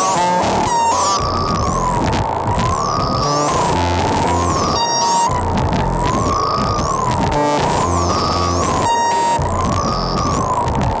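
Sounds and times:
low held synth notes: 0.0s - 11.0s
wavering synthesizer tone: 0.0s - 11.0s.

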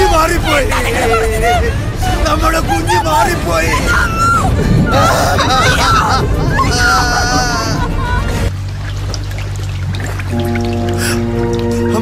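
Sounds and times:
people calling out: 0.0s - 8.3s
low rumble: 0.0s - 12.0s.

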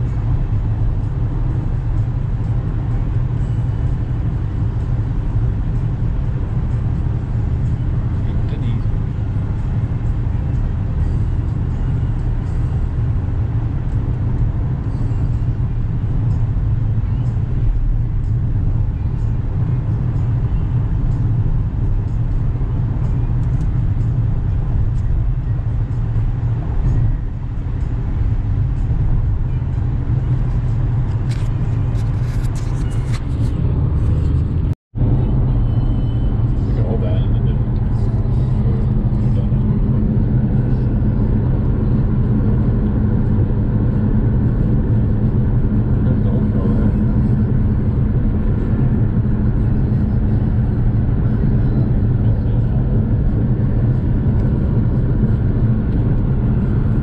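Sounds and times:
road and engine rumble: 0.0s - 57.0s.

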